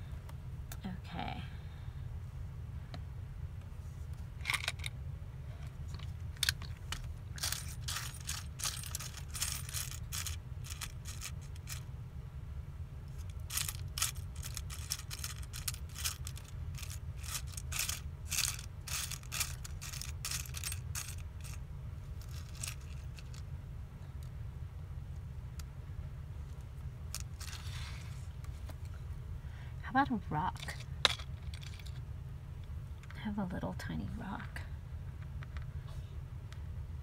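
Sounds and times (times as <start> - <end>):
steady low hum: 0.0 - 37.0
craft supplies rummaged on table: 6.0 - 11.8, 13.2 - 21.6, 22.2 - 23.4, 27.2 - 28.2.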